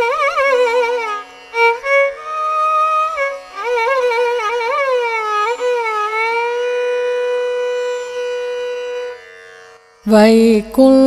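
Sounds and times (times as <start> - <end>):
violin playing ornamented phrase: 0.0 - 10.8.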